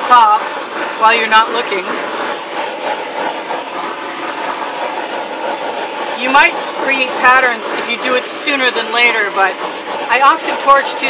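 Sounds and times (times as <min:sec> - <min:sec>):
propane torch hissing: 0:00.0 - 0:11.0.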